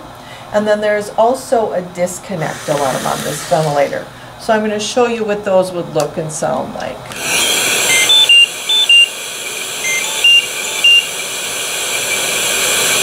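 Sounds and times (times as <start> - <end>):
ventilator alarm beeps: 7.9 - 12.4.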